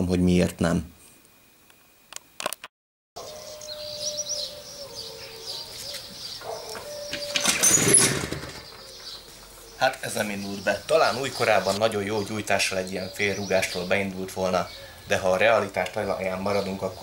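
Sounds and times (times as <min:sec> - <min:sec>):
birds chirping: 0:03.2 - 0:17.0
moped engine turning over: 0:07.1 - 0:08.9.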